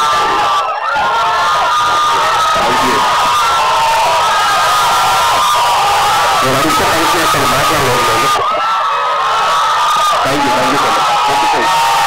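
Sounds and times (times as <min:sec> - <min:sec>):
audience cheering and shouting: 0:00.0 - 0:12.0.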